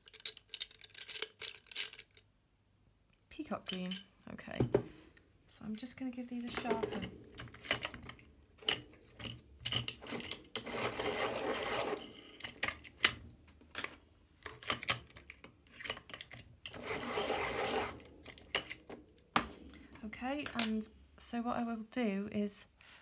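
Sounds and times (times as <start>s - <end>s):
pencils clicking and tapping: 0.0s - 2.2s, 6.4s - 19.6s
pencil sharpener grinding: 10.0s - 12.3s, 16.7s - 18.1s.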